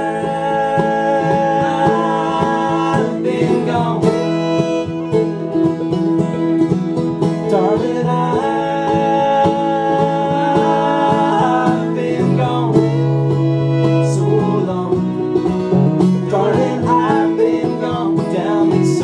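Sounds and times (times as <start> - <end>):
banjo: 0.0 - 19.0
fiddle lead with sliding notes: 0.0 - 19.0
strummed acoustic guitar: 0.0 - 19.0.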